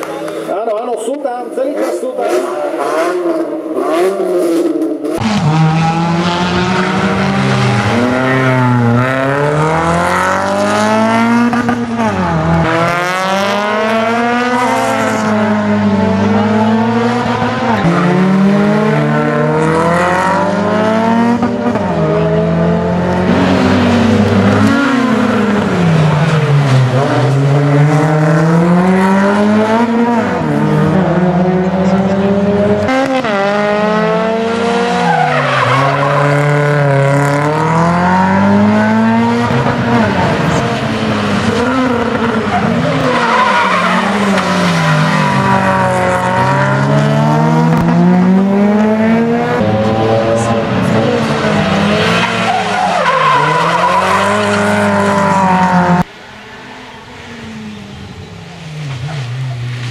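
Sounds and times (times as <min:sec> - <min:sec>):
rally car engine revving: 0:00.0 - 0:56.1
tyres squealing: 0:51.0 - 0:55.2.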